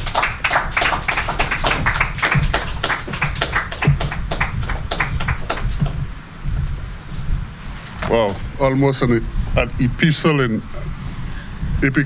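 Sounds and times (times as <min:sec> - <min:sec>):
small audience applauding: 0:00.0 - 0:06.0.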